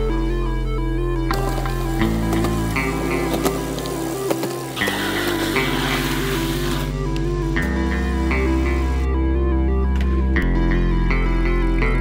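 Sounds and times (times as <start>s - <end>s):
steady bass line: 0.0s - 12.0s
held stepping notes: 1.3s - 9.2s.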